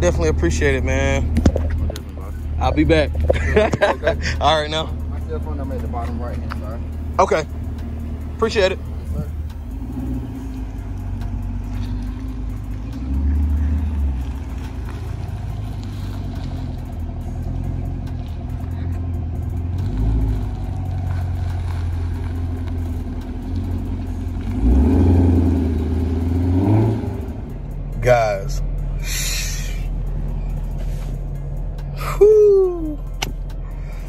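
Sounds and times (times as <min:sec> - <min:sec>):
car engine revving: 0:00.0 - 0:34.0.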